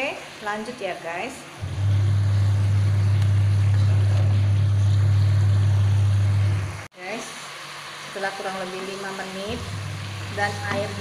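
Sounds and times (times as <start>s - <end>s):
loud low hum: 1.6s - 6.9s, 9.5s - 11.0s
sauce sizzling and bubbling in a pan: 6.8s - 11.0s.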